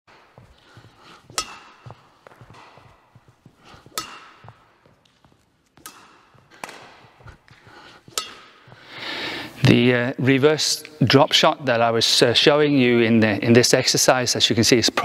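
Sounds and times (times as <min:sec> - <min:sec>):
racket hitting shuttlecock: 0:00.1 - 0:08.9.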